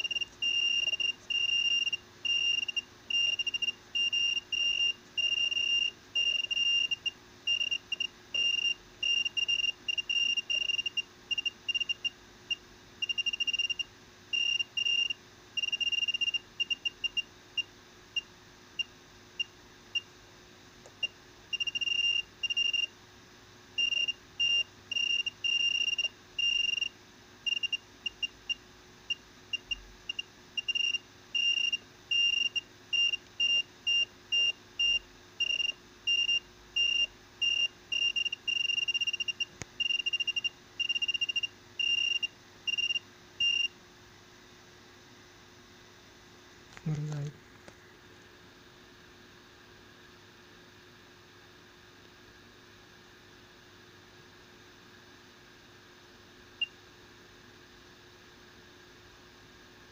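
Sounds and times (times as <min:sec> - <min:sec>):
high-pitched electronic beeping: 0:00.0 - 0:12.0
faint electronics hum: 0:00.0 - 0:59.9.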